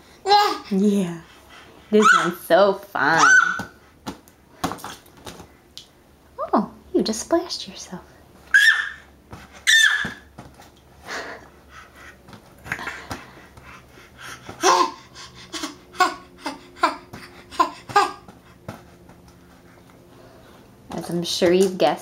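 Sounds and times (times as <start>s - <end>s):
baby squealing: 2.0s - 2.4s, 3.2s - 3.7s, 8.5s - 10.3s
baby laughing: 8.5s - 9.0s, 9.6s - 10.2s, 14.6s - 18.3s.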